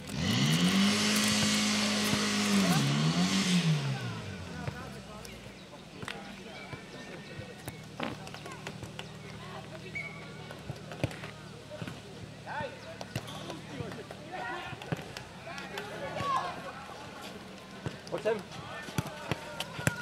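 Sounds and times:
players' voices: 0:00.8 - 0:20.0
ball kicked and bouncing on clay: 0:04.6 - 0:05.3, 0:06.0 - 0:09.4, 0:10.2 - 0:12.1, 0:12.9 - 0:16.5, 0:17.7 - 0:20.0.

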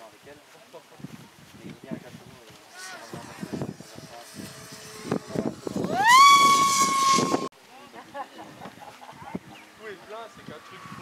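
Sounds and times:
model aircraft engine whine: 0:02.6 - 0:07.5, 0:09.7 - 0:11.0.

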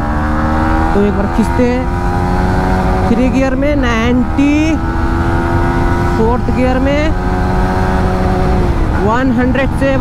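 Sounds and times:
heavy wind rush: 0:00.0 - 0:10.0
motorcycle engine at high revs: 0:00.0 - 0:10.0.

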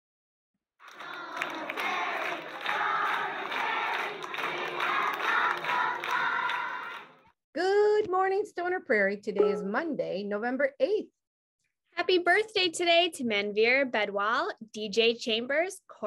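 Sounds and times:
crowd shouting and cheering: 0:00.8 - 0:07.2.

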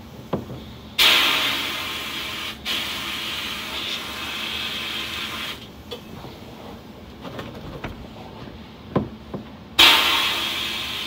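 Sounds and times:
sandblast gun hissing: 0:01.0 - 0:05.7, 0:09.8 - 0:11.0.

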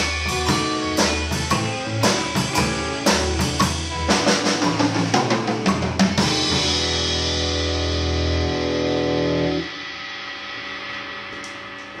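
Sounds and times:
distorted electric guitar chord: 0:06.2 - 0:11.4.

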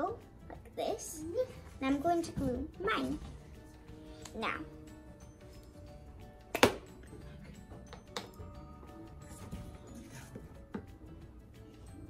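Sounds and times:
background music with held tones: 0:00.0 - 0:12.0.

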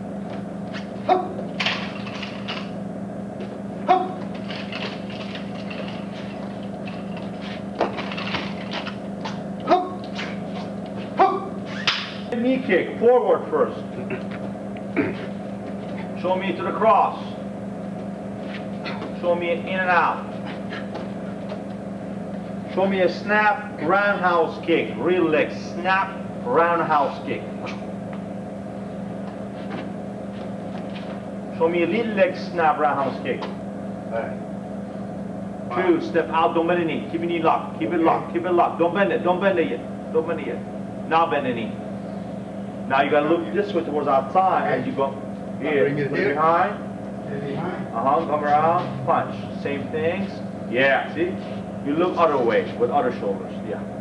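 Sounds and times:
steady low hum: 0:00.0 - 0:54.0
man shouting kihap: 0:01.0 - 0:01.4, 0:03.8 - 0:04.3, 0:09.6 - 0:10.2, 0:11.1 - 0:11.6.

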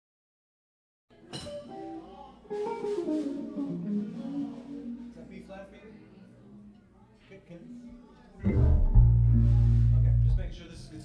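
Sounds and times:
guitar plucked notes: 0:01.5 - 0:05.4, 0:08.4 - 0:10.6.

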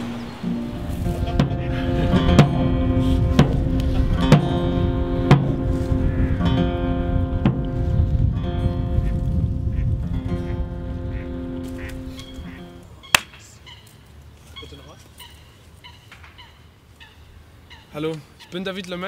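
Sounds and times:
loud low rumble: 0:00.0 - 0:11.6
reedy instrument chords: 0:00.0 - 0:12.8.

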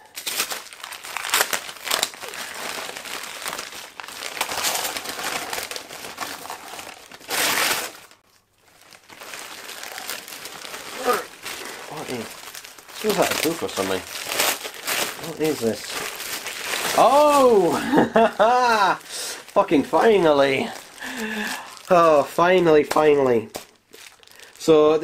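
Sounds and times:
wrapping paper crinkling and tearing: 0:00.0 - 0:25.0.

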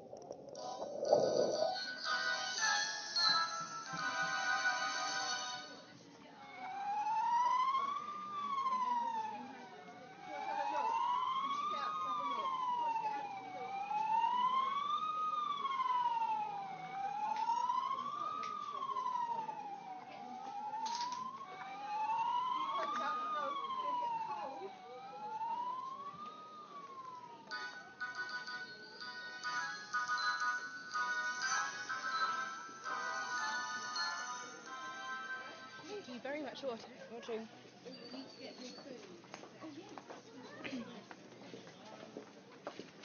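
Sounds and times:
toy electronic siren wailing: 0:00.6 - 0:03.5.

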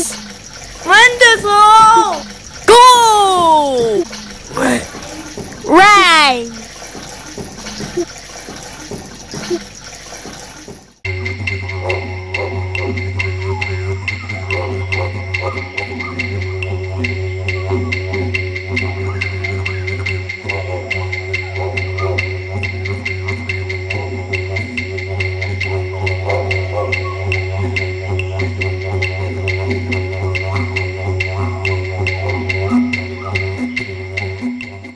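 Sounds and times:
didgeridoo drone: 0:11.1 - 0:34.9.

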